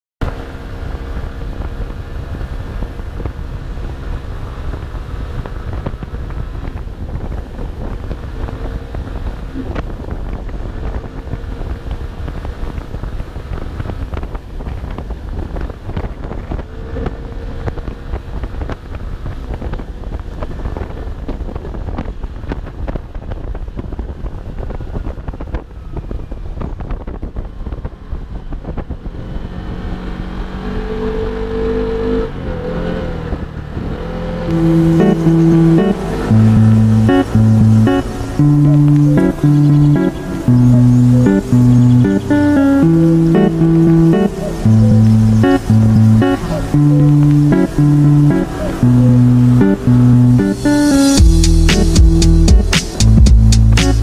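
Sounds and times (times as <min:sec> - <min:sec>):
wind rumble on microphone: 0:00.2 - 0:30.6
road noise: 0:00.2 - 0:54.0
guitar music: 0:34.5 - 0:54.0.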